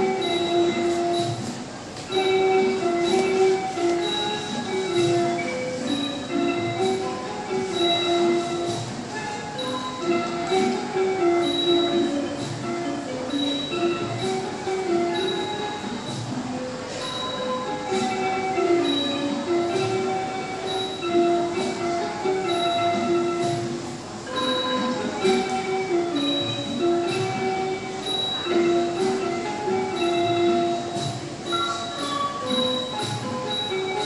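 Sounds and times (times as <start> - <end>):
traditional ensemble music: 12.0 - 34.0.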